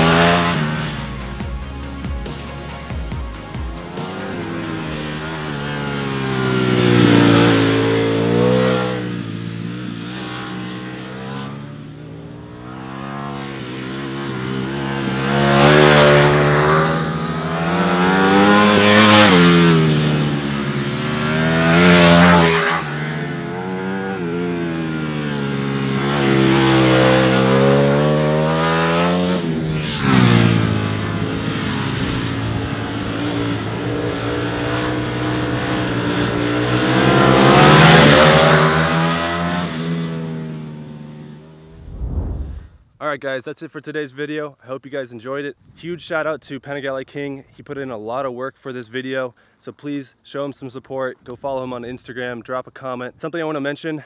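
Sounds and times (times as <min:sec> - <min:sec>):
motorcycle engine revving hard: 0:00.0 - 0:01.5, 0:03.7 - 0:42.6.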